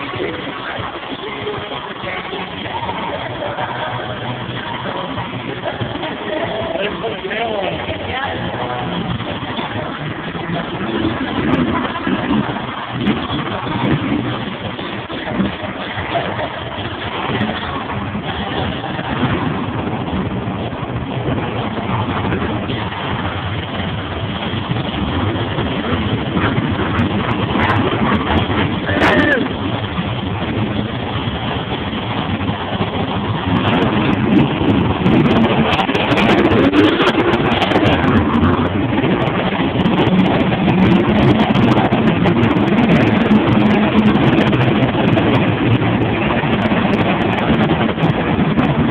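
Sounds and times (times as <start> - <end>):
crowd noise: 0.0 - 48.9
truck engines rumbling and revving: 0.0 - 48.9.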